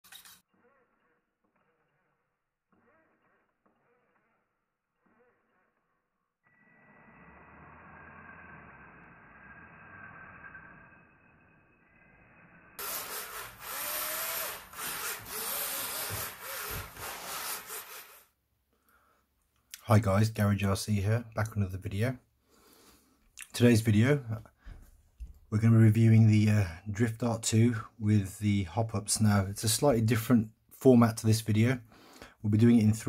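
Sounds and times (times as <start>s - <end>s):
small electric motor whining: 0.1s - 9.9s, 12.8s - 18.4s.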